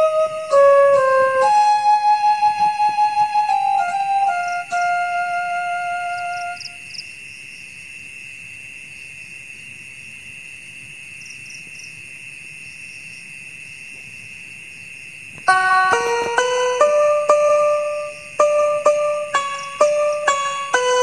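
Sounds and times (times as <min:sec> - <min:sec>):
flute music: 0:00.0 - 0:06.8, 0:15.5 - 0:21.0
night insects droning: 0:00.0 - 0:21.0
quick insect chirps: 0:01.9 - 0:05.2, 0:05.8 - 0:21.0.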